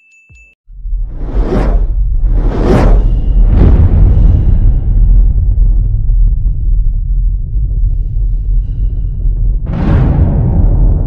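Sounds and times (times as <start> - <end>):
deep steady rumble: 0.7 - 11.0
whooshes: 0.8 - 6.1.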